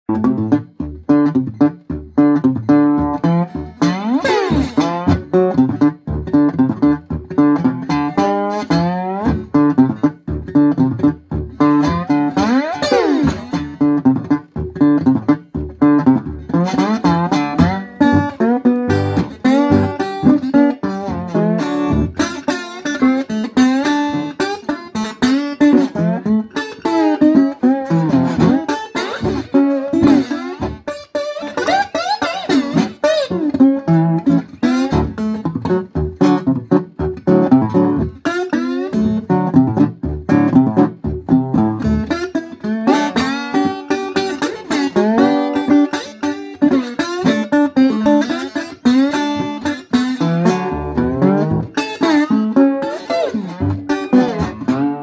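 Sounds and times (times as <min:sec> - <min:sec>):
fingerstyle blues slide guitar: 0:00.1 - 0:55.0.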